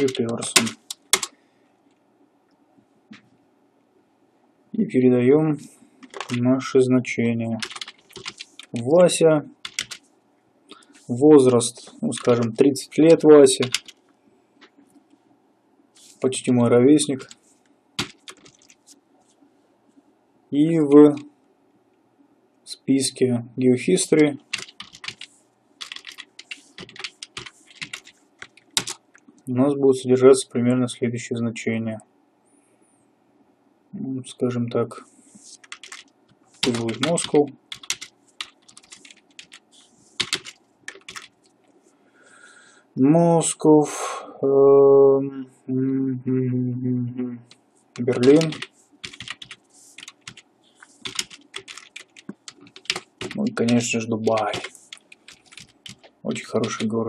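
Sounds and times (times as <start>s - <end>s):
keyboard typing clicks: 0.0s - 1.3s, 7.6s - 8.9s, 9.7s - 10.0s, 13.6s - 14.0s, 18.0s - 18.8s, 24.5s - 29.2s, 35.6s - 39.6s, 40.2s - 41.4s, 48.2s - 50.4s, 51.0s - 56.8s
person speaking: 0.0s - 1.4s, 4.7s - 10.0s, 10.7s - 14.0s, 16.0s - 19.0s, 20.5s - 21.4s, 22.7s - 32.0s, 33.9s - 41.5s, 43.0s - 57.0s.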